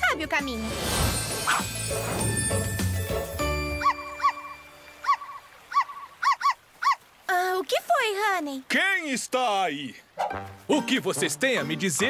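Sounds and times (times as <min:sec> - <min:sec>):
cartoon puppy yipping: 0:03.8 - 0:07.0, 0:10.2 - 0:10.4.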